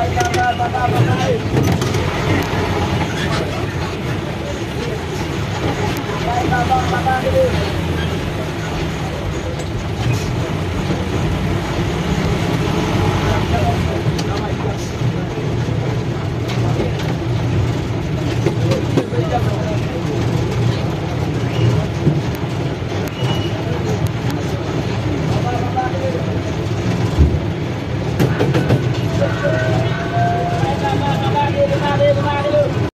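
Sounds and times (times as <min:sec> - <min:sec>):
bus engine running: 0:00.0 - 0:32.9
street voices: 0:00.0 - 0:32.9
traffic: 0:00.0 - 0:32.9.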